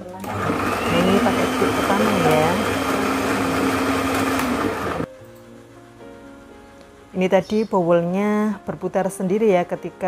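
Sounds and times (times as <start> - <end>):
stand mixer motor whirring: 0.2 - 5.1.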